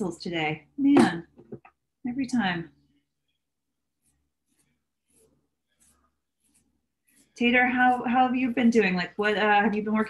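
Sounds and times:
pencil scratching on paper: 3.0 - 10.0.

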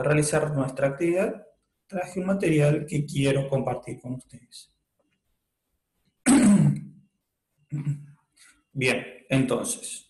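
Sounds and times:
man clearing his throat: 6.3 - 6.8, 7.8 - 8.0.

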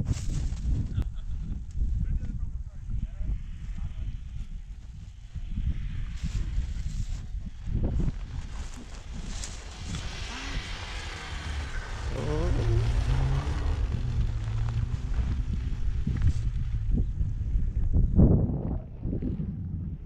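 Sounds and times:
wind rumbling on microphone: 0.0 - 20.0
distant rally car engine: 9.6 - 17.6.

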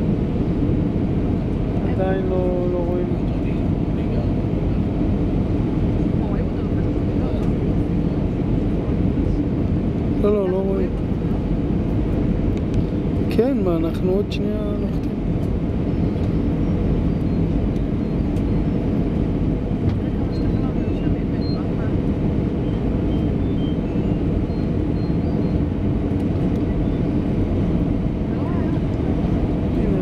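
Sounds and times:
airliner cabin engine rumble: 0.0 - 30.0.

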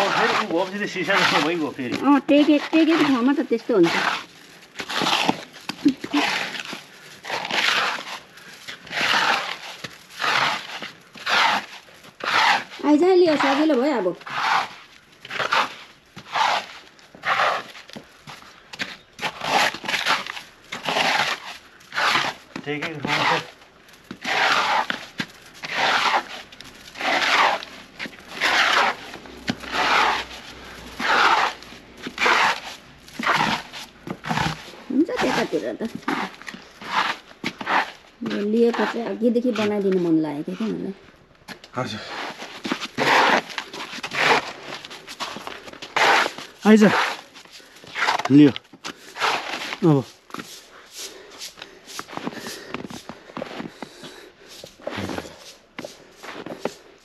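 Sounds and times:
shovel scraping snow off pavement: 0.0 - 40.8, 41.8 - 57.0.

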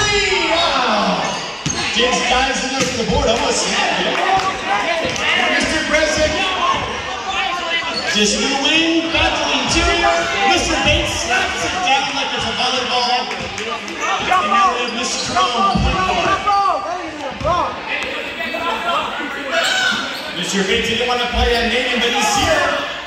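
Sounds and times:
spectators chattering: 0.0 - 23.0.

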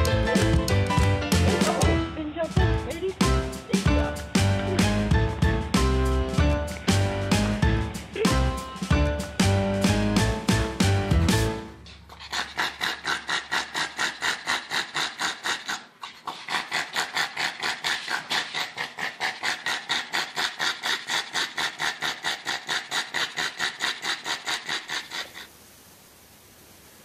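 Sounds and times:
dog panting hard: 11.8 - 25.5.

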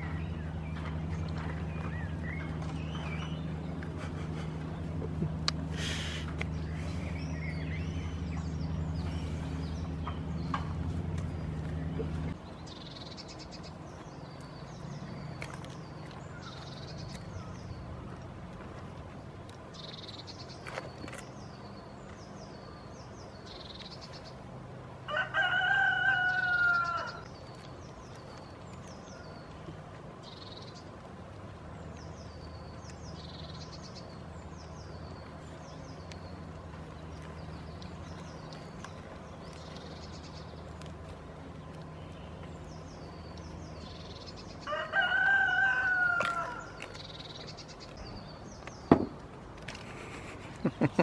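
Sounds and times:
small birds chirping: 0.0 - 51.0
drawn-out animal call: 25.0 - 31.0, 33.4 - 48.7
rooster crowing: 25.1 - 27.2, 44.6 - 46.8.

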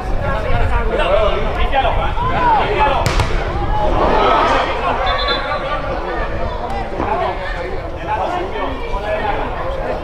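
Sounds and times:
players shouting: 2.3 - 6.2.

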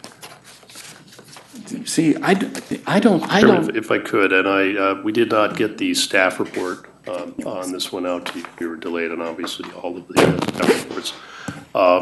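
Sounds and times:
papers rustling: 0.0 - 2.2
man talking: 1.6 - 12.0.

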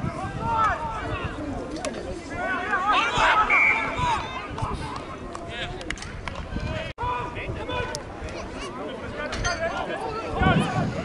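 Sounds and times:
people calling out: 2.2 - 4.6.

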